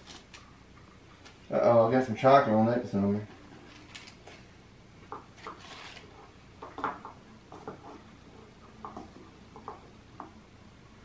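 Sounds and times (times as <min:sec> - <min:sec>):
wax paper rustling: 0:05.4 - 0:06.2.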